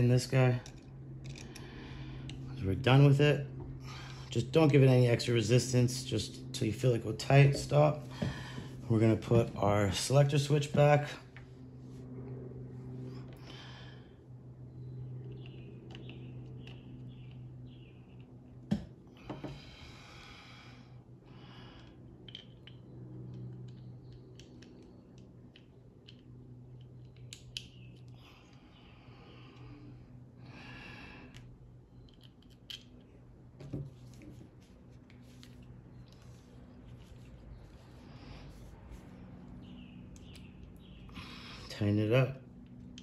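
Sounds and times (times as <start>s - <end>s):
steady low hum: 0.0s - 43.0s
small sharp clicks of parts: 21.8s - 28.6s, 31.3s - 33.2s
hands rustling parts: 31.3s - 40.8s.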